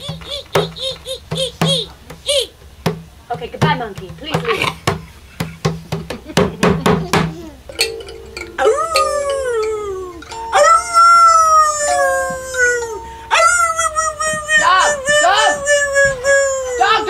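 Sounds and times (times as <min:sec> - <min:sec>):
quick struck notes: 0:07.7 - 0:13.8
instrument holding notes: 0:07.7 - 0:17.0
person howling like a dog: 0:08.6 - 0:17.0.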